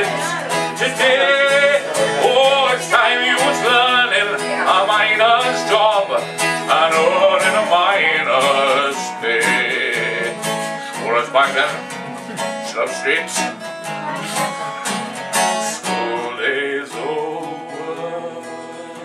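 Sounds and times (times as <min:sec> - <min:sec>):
acoustic guitars strummed: 0:00.0 - 0:19.0
man singing: 0:00.0 - 0:19.0.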